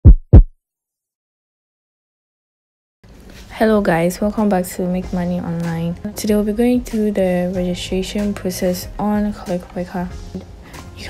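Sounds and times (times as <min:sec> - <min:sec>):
deep heartbeat-like thumps: 0:00.0 - 0:00.5.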